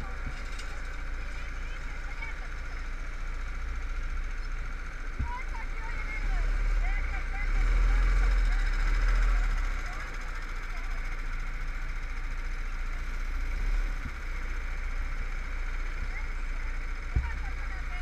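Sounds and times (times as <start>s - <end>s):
go-kart engine rumbling: 0.0s - 18.0s.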